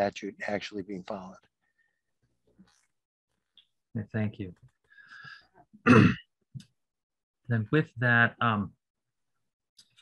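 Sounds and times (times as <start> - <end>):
faint breath: 4.9 - 5.6
man clearing his throat: 5.8 - 6.3.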